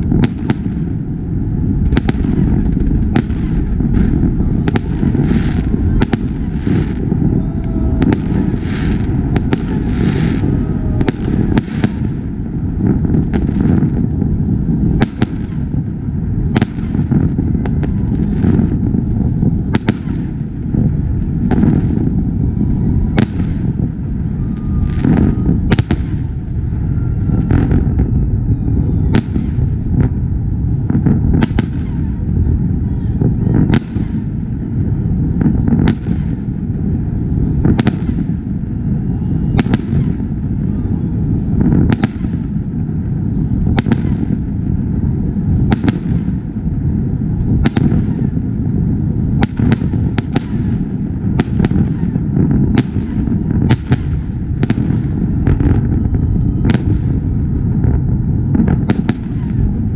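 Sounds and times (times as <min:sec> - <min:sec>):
fireworks bangs: 0:00.0 - 0:59.9
low rumble: 0:00.0 - 0:59.9.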